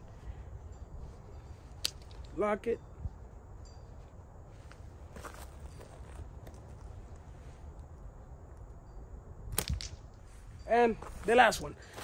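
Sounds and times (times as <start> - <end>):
slingshot firing snaps: 9.5 - 10.1.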